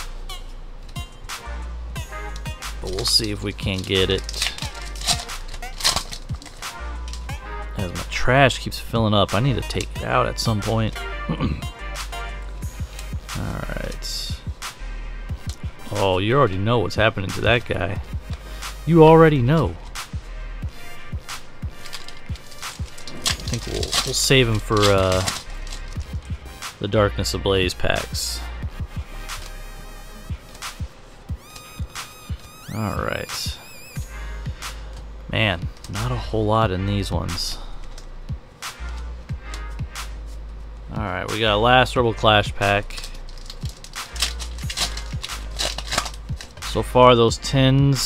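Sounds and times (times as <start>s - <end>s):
background music with steady beat: 0.0s - 48.0s
foil wrapper crinkling and tearing: 2.8s - 8.0s, 21.5s - 26.4s, 42.7s - 46.8s.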